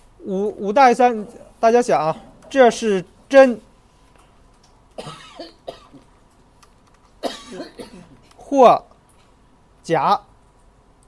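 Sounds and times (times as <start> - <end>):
man coughing: 5.0 - 6.0, 7.2 - 8.2
computer keyboard clicks: 6.0 - 7.2.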